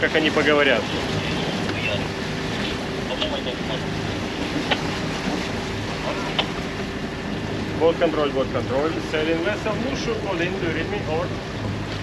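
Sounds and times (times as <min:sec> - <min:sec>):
steady low hum: 0:00.0 - 0:12.0
water rushing past hull: 0:00.0 - 0:12.0.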